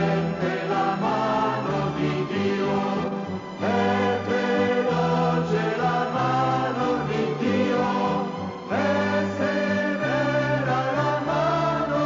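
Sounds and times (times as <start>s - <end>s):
choir singing a hymn: 0.0s - 12.0s.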